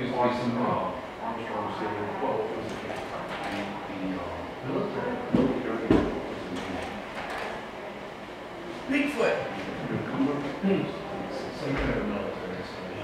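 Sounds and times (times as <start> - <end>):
low murmuring voices: 0.0 - 13.0
slide projector clacks: 2.6 - 3.8, 5.3 - 7.6.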